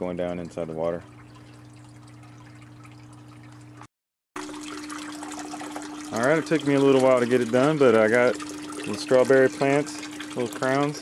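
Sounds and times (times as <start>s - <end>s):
constant low hum: 0.0s - 3.9s
water trickling: 0.0s - 11.0s.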